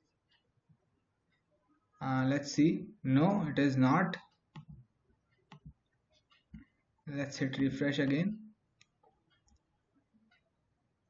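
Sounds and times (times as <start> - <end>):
computer mouse clicking: 4.2 - 6.8, 8.7 - 10.5.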